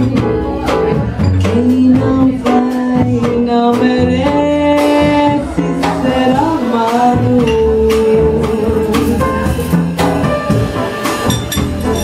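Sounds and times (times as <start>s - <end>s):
woman singing: 0.0s - 10.1s
drums keeping time: 0.0s - 12.0s
piano: 0.0s - 12.0s
plucked upright bass: 0.0s - 12.0s.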